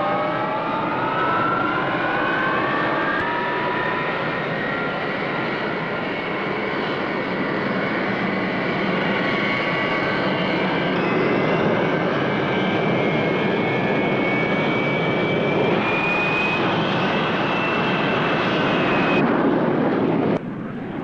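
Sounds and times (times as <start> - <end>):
jet engine high whine: 0.0 - 21.0
jet engine roar: 0.0 - 21.0.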